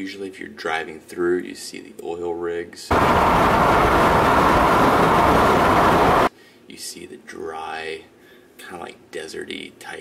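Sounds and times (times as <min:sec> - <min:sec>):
wind and road noise: 0:02.9 - 0:06.3.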